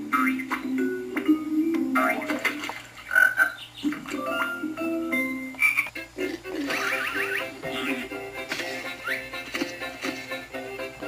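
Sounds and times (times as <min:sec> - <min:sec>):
cartoon frog croaks: 0:03.1 - 0:04.5, 0:06.6 - 0:08.2.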